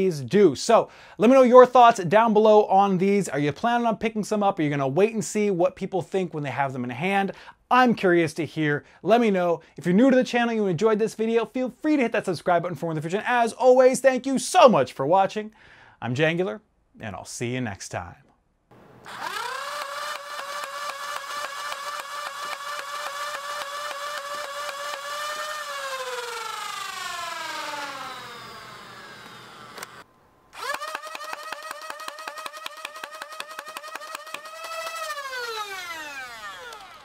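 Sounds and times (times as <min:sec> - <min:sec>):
toy blaster flywheel whine: 0:19.0 - 0:37.0
fast train of clicks: 0:30.6 - 0:35.2.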